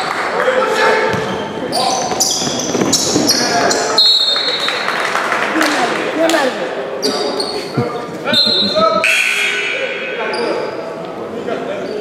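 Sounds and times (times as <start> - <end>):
players' voices: 5.4 - 12.0.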